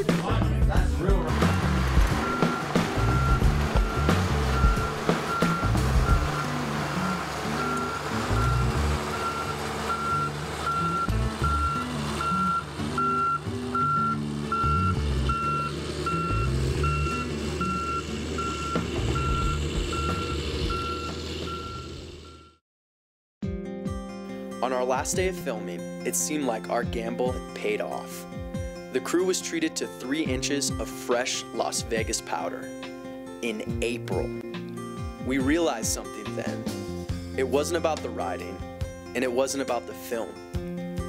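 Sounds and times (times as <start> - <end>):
background music: 0.0 - 21.8, 23.4 - 41.0
reversing alarm beeping: 2.1 - 22.6.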